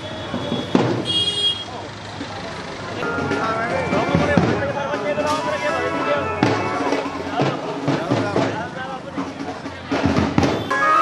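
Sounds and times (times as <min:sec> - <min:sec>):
crowd talking: 0:00.0 - 0:11.0
music: 0:03.0 - 0:11.0.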